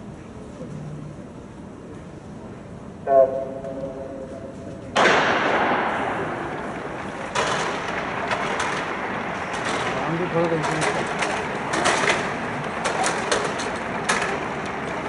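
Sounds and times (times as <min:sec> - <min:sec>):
steady rush of noise: 0:00.0 - 0:15.0.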